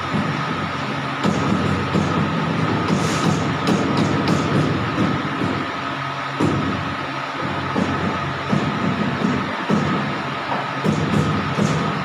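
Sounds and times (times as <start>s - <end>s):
continuous machine whine: 0.0s - 12.0s
pipe bending machine running: 0.0s - 12.0s.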